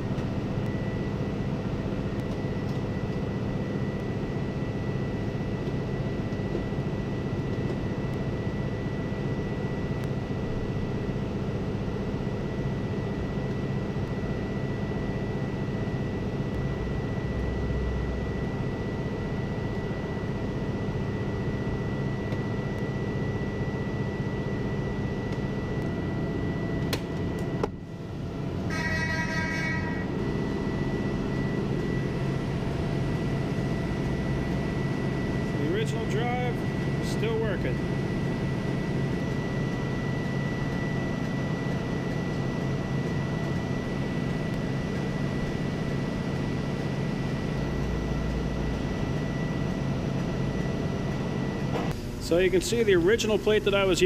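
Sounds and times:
industrial machinery drone: 0.0 - 54.0.

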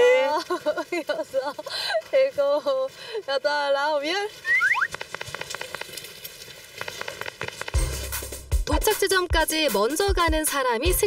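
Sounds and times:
running footsteps on paving stones: 4.2 - 8.9.

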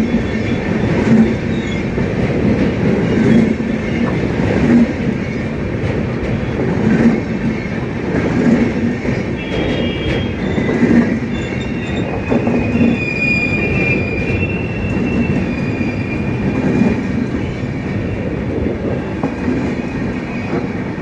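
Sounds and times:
train wheels rumbling on rails: 0.0 - 21.0
high-pitched wheel squeal: 9.4 - 16.6.

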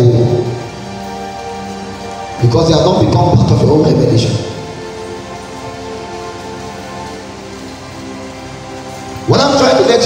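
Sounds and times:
soft sustained chords: 0.0 - 10.0
steady hiss: 0.0 - 10.0.

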